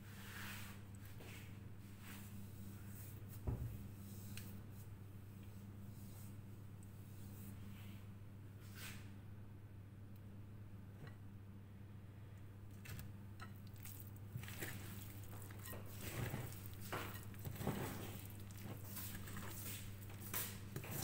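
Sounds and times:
fork stirring thick batter: 12.8 - 21.0
fork scraping glass bowl: 14.4 - 21.0.

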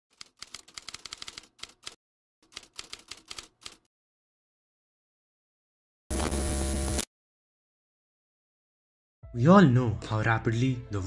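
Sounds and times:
keystroke clicks typing: 0.1 - 3.9.

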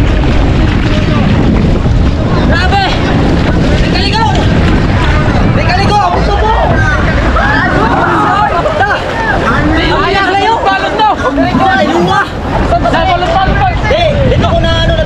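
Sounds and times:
water rushing along hull: 0.0 - 15.0
wind buffeting microphone: 0.0 - 15.0
voices shouting: 4.1 - 14.4.

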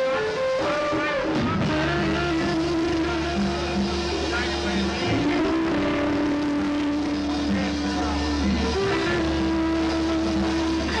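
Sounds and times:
electric guitar long note: 0.0 - 11.0
rock band playing: 0.0 - 11.0.

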